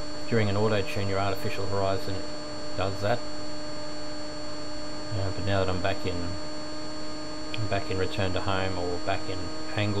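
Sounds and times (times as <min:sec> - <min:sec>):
constant hiss: 0:00.0 - 0:10.0
steady hum with tones: 0:00.0 - 0:10.0
person speaking: 0:07.6 - 0:10.0.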